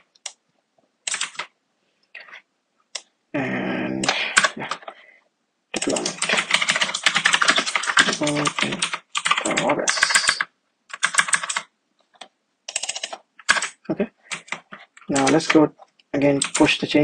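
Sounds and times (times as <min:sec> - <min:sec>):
fast typing on computer keyboard: 0:01.1 - 0:01.5, 0:04.0 - 0:04.9, 0:05.8 - 0:11.7, 0:12.7 - 0:15.6, 0:16.2 - 0:16.8.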